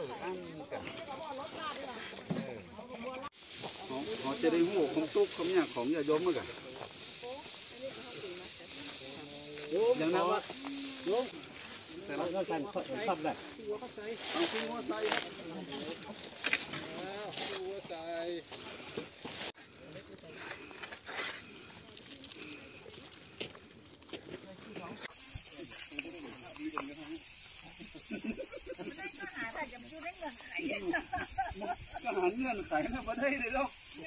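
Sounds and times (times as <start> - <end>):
people talking: 0.0 - 18.5, 24.6 - 34.0
steady high hiss: 0.0 - 20.2, 24.5 - 34.0.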